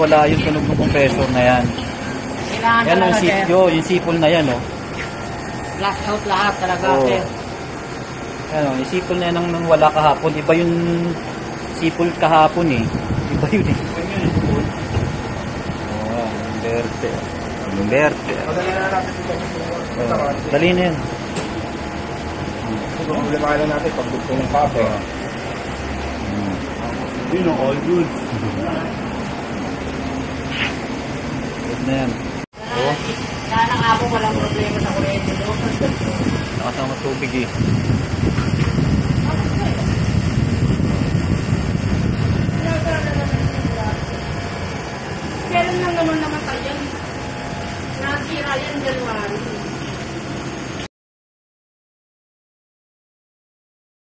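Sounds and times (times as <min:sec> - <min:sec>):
air conditioner unit running: 0:00.0 - 0:50.9.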